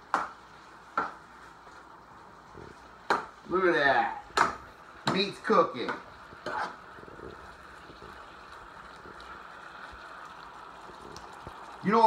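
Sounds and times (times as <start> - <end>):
meat and onions sizzling: 0.0 - 12.0.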